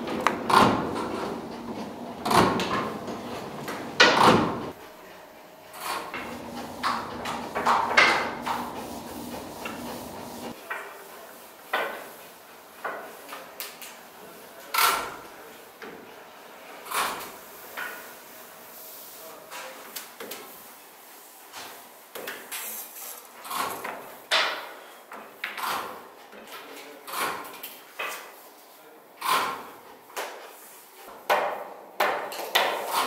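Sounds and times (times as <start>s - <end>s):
dough sheeting machine clunks: 0.0s - 4.8s, 5.8s - 10.6s
faint machine hum: 0.0s - 10.6s
dough sliding swishes: 6.3s - 10.6s.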